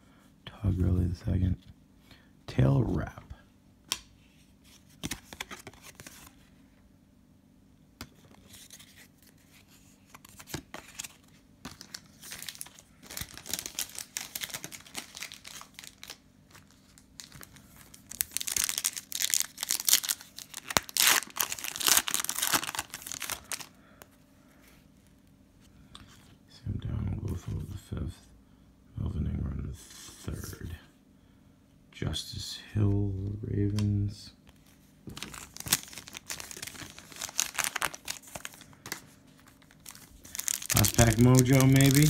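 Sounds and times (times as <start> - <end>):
plastic wrapper crinkling and tearing: 10.2 - 23.8, 35.1 - 42.0.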